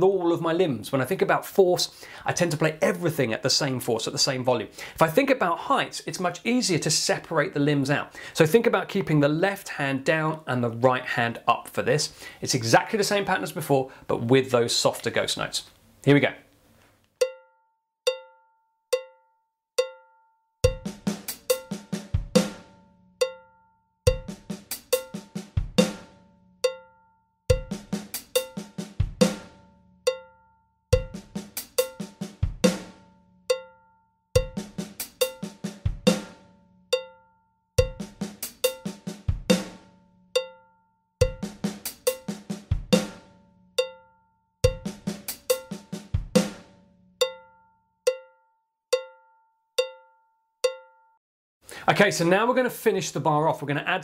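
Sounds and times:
electronic drum kit: 0:20.6 - 0:22.7, 0:24.1 - 0:26.8, 0:27.5 - 0:30.2, 0:31.0 - 0:33.0, 0:34.4 - 0:36.4, 0:37.8 - 0:39.8, 0:41.2 - 0:43.3, 0:44.6 - 0:46.7.

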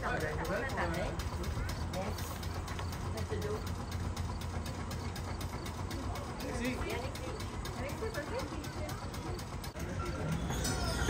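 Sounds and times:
fast even ticking: 0:00.0 - 0:11.0
rail vehicle low hum: 0:00.0 - 0:11.0.

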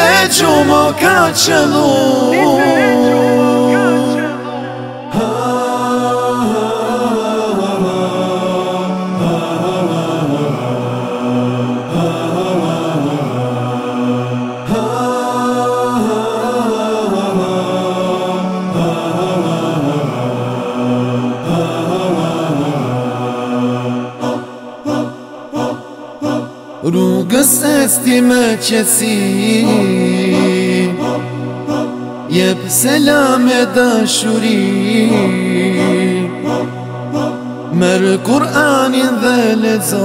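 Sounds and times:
wordless chanted vocal melody: 0:00.0 - 0:40.0.

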